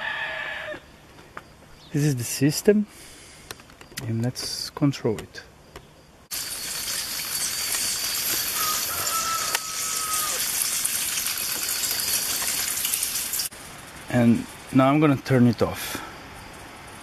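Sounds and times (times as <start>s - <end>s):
irrigation water spraying: 6.3s - 13.6s.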